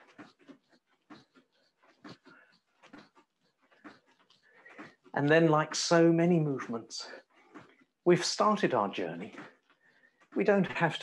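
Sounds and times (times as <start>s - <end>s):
quick faint breaths: 0.0s - 5.2s, 9.3s - 10.4s
soft movement sounds: 0.0s - 11.0s.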